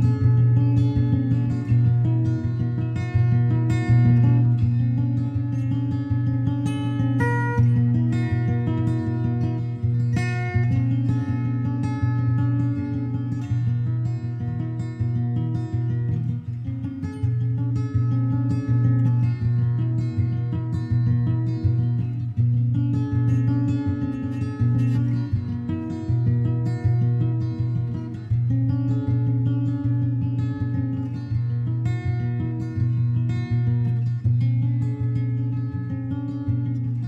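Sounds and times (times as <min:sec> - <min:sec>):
acoustic guitar picking: 0:00.0 - 0:37.0.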